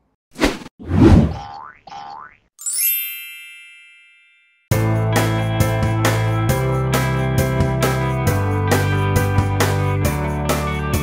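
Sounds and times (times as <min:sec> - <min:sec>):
quick rising slides: 0:00.4 - 0:01.4
bright chime ringing: 0:02.6 - 0:04.7
music: 0:04.7 - 0:11.0.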